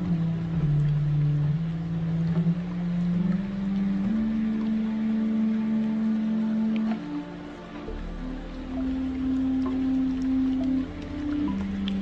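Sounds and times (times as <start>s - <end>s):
slow meditation music: 0.0s - 12.0s
soft steady drone: 0.0s - 12.0s.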